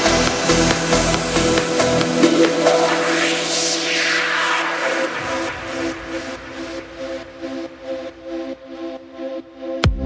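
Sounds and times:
bass: 0.0s - 3.8s, 5.1s - 10.0s
falling noise sweep: 0.0s - 8.5s.

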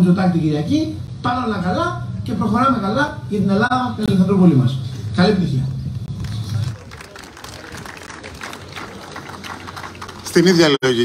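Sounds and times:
audience applauding: 6.2s - 11.0s.

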